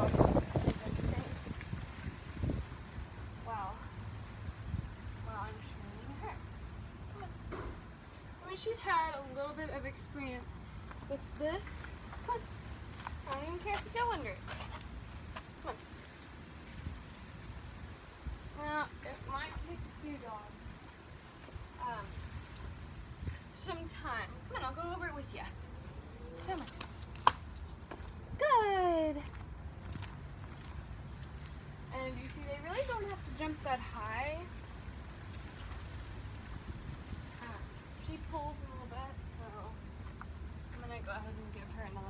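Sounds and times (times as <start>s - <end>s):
wind buffeting microphone: 0.0s - 3.8s
woman calling: 28.4s - 29.3s.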